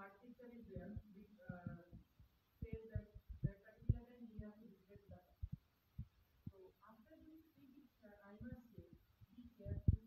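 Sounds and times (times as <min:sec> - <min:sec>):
soft low thumps: 0:00.4 - 0:10.0.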